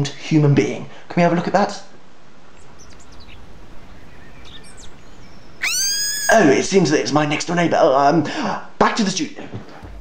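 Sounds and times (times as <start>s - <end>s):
outdoor background hiss: 0.0s - 10.0s
bird chirps: 2.5s - 6.5s.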